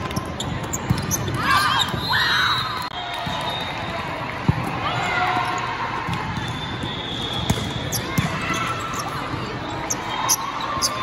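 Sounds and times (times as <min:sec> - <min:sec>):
crowd chatter: 0:02.9 - 0:11.0.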